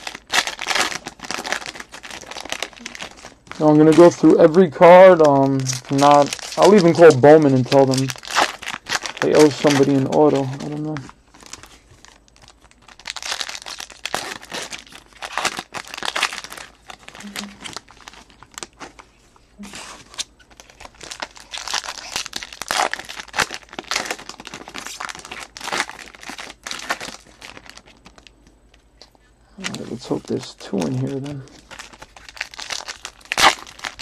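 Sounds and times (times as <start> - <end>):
foil wrappers crinkling and tearing: 0.0 - 28.8, 29.6 - 34.0.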